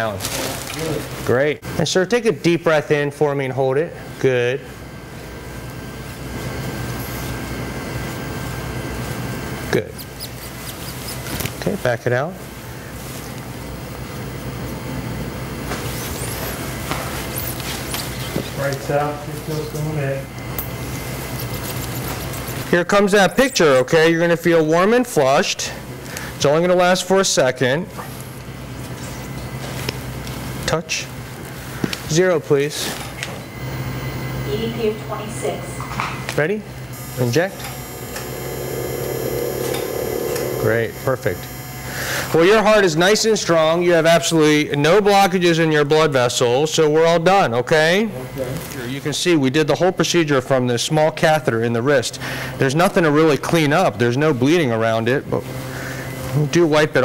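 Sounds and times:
low background hum: 0.0 - 57.0
mid-pitched equipment hum: 0.0 - 57.0
low equipment hum: 27.6 - 44.4.

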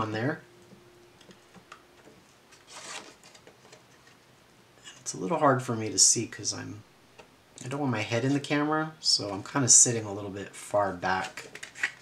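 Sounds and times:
cardstock being handled: 2.5 - 4.2.

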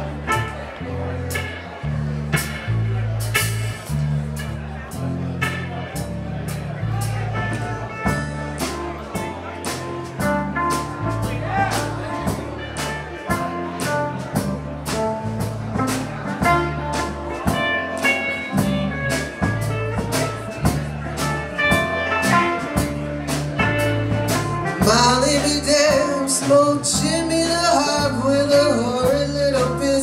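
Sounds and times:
drum kit steady beat: 0.0 - 30.0
electric bass: 0.0 - 30.0.

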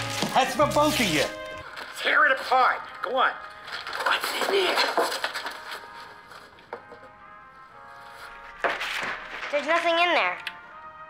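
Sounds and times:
wrapping paper tearing: 0.0 - 2.6, 3.4 - 6.6, 8.2 - 10.4.

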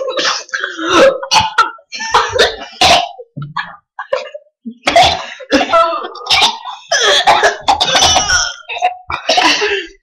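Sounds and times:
person coughing: 4.0 - 10.0.

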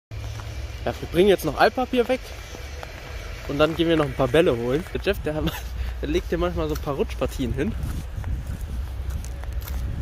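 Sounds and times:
footsteps crunching on snow: 0.1 - 10.0
wind rumble on microphone: 2.6 - 10.0.

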